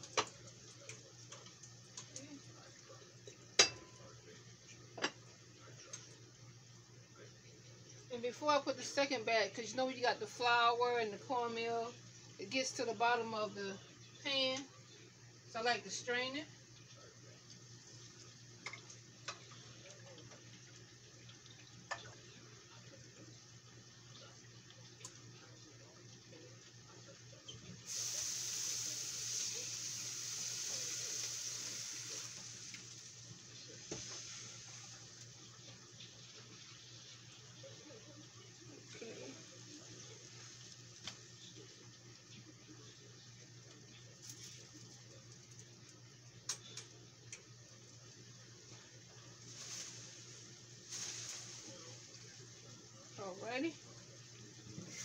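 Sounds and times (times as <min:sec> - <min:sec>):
tap water running: 0:00.0 - 0:06.3, 0:07.2 - 0:55.0.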